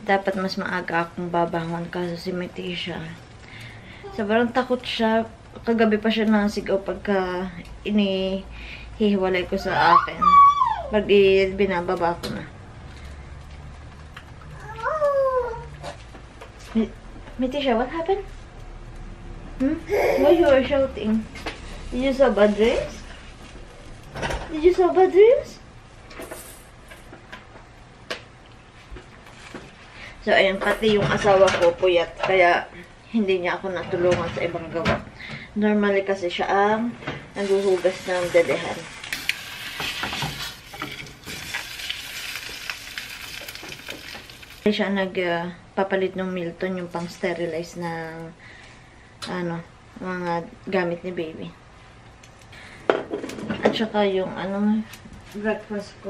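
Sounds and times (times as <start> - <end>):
baby crying: 9.6 - 11.0, 19.9 - 20.6
egg sizzling in a pan: 37.4 - 44.8.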